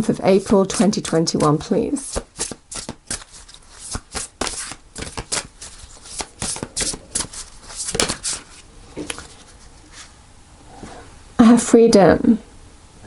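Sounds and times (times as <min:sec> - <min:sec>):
cards being shuffled: 0:00.0 - 0:10.1.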